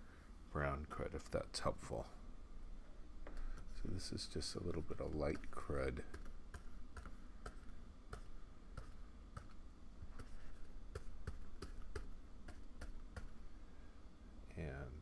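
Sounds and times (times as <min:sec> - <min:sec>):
stylus clicks and taps: 0:05.3 - 0:09.6, 0:10.2 - 0:13.4.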